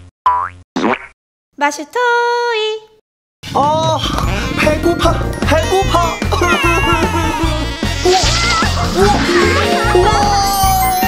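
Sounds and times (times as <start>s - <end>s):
person speaking: 3.5s - 10.8s.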